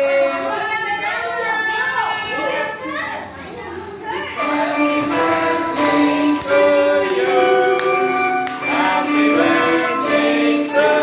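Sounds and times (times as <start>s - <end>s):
children talking and calling out: 0.6s - 4.4s.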